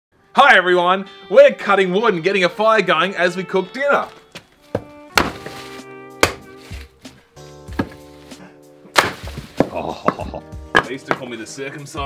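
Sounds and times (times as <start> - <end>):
background music: 0.2 - 12.0
axe chopping firewood: 4.8 - 6.9, 7.7 - 8.1, 8.8 - 11.3.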